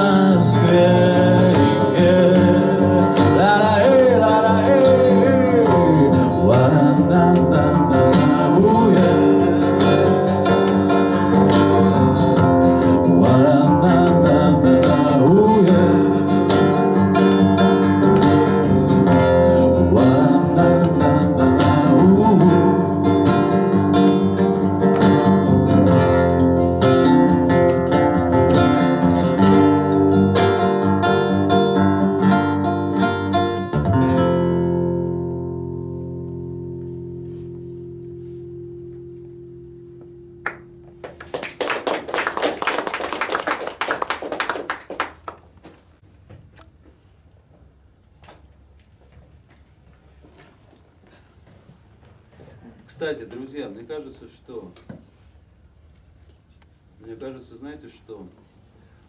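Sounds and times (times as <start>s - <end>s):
acoustic guitar playing: 0.0s - 42.4s
applause from small audience: 40.4s - 45.6s.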